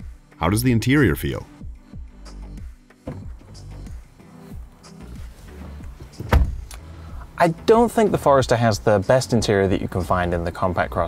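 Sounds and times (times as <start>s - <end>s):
car door shutting: 3.0s - 3.8s, 5.2s - 6.8s.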